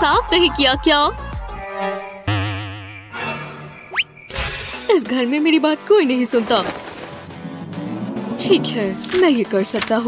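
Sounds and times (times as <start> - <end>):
background music: 0.0 - 10.0
cartoon rising whistle: 2.2 - 4.2.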